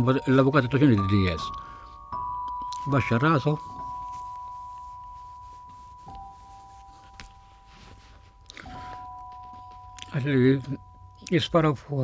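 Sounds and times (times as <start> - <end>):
bell-like chime notes: 0.0 - 12.0.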